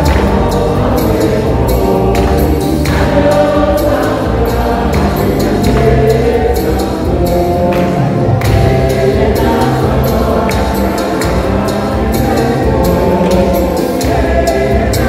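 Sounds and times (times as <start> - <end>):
choir singing gospel: 0.0 - 15.0
steady percussion beat: 0.0 - 15.0.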